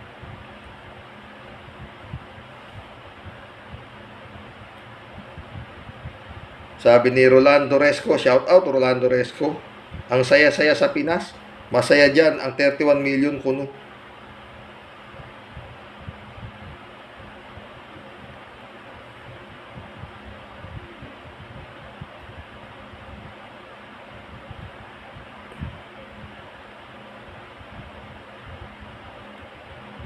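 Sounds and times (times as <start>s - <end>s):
room noise hiss: 0.0s - 30.0s.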